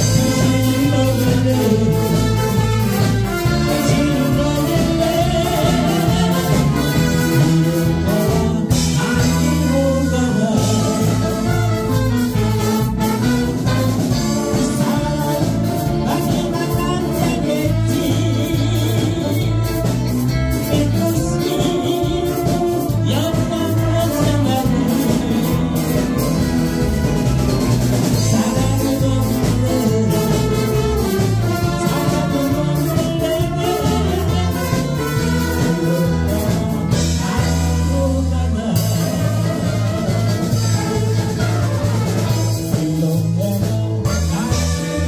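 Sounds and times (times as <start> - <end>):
saxophone section: 0.0 - 42.8, 44.0 - 45.0
big band playing: 0.0 - 45.0.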